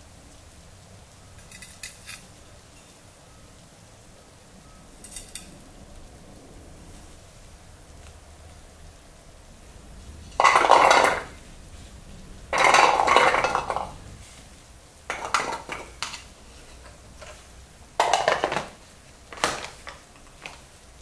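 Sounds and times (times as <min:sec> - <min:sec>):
garlic cloves clattering in plastic bowl: 0:10.4 - 0:11.4, 0:12.5 - 0:14.1, 0:15.1 - 0:16.3, 0:18.0 - 0:20.7.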